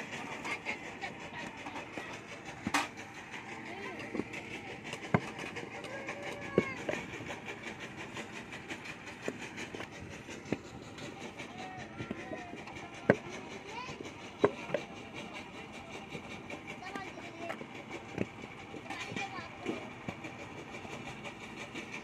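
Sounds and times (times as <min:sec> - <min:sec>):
voices chattering: 0:00.0 - 0:21.2.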